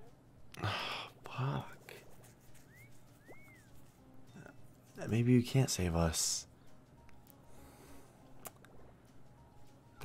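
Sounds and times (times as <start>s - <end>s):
soft short electronic tones: 2.5s - 4.5s.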